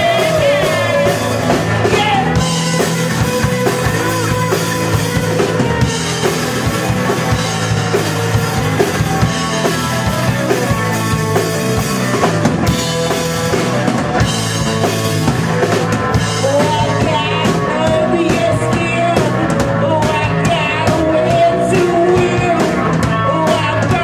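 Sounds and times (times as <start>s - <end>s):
live rock band playing: 0.0s - 24.0s.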